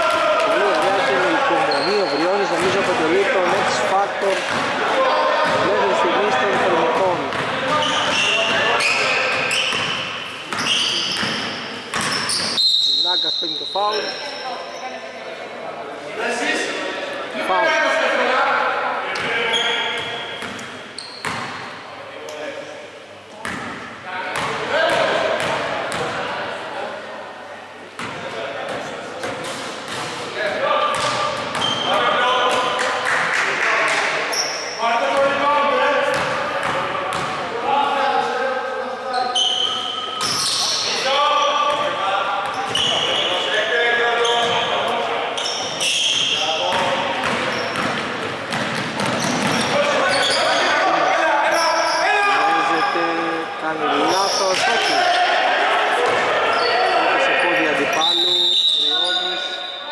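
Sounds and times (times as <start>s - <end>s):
voices calling out echoing: 0.0s - 59.9s
basketball bouncing on wooden court: 7.2s - 8.2s, 46.1s - 49.7s.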